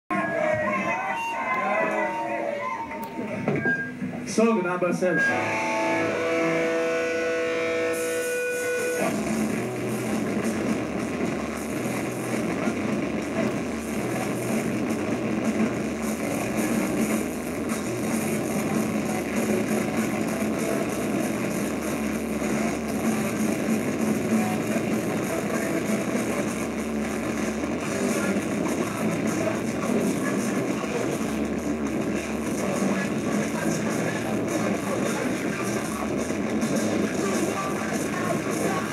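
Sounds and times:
held electric guitar notes: 5.2 - 10.2
rock band playing loudly: 5.2 - 38.9.

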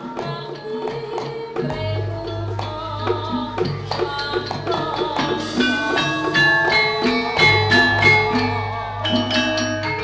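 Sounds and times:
drum strokes: 0.0 - 10.0
gamelan music: 0.0 - 10.0
metallophone notes ringing: 5.4 - 10.0.

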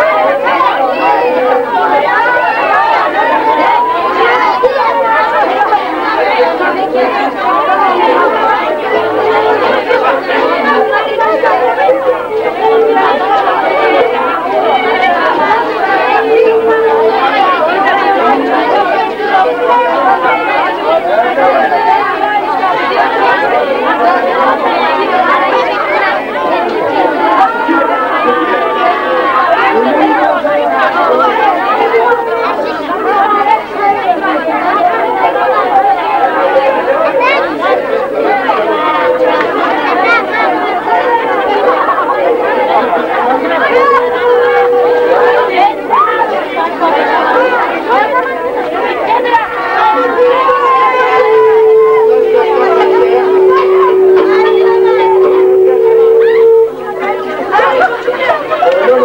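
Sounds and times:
crowd chattering: 0.0 - 59.0.

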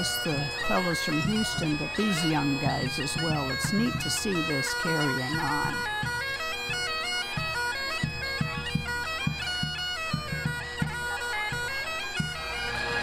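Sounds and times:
drum beats: 0.0 - 12.5
bagpipes playing: 0.0 - 13.0.

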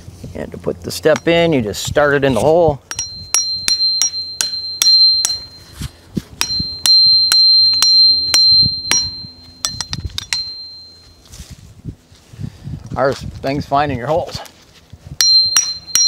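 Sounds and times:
hammer tapping metal: 1.1 - 1.4, 2.9 - 5.8, 6.4 - 11.0, 15.2 - 16.0.

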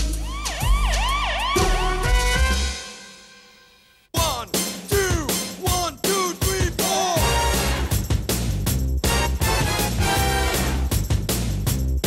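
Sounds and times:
jazzy jingle with drum hits: 4.2 - 12.0.

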